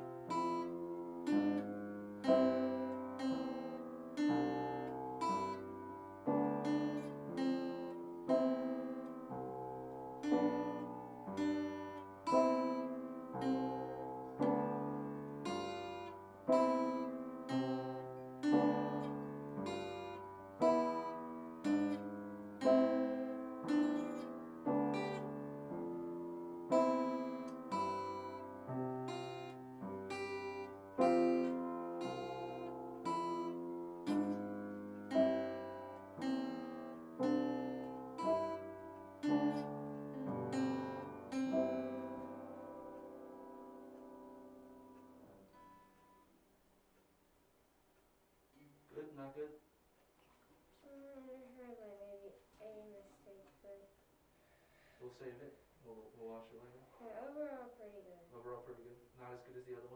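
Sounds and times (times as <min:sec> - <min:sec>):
solo instrumental notes and chords: 0:00.0 - 0:46.1.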